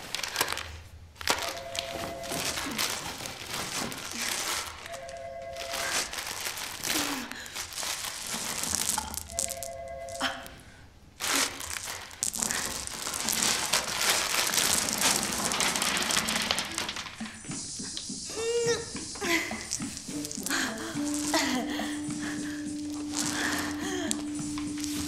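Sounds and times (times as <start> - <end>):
plastic bag crinkling and tearing: 0.0 - 10.5, 11.2 - 17.2, 19.6 - 25.0
candies spilling and scattering: 0.0 - 10.6, 11.2 - 17.4, 19.1 - 25.0.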